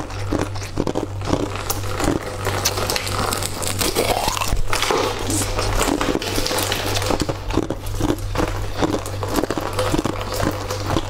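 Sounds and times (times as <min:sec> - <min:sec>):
biting frozen treat: 0:00.0 - 0:11.0
chewing with crunches: 0:00.0 - 0:11.0.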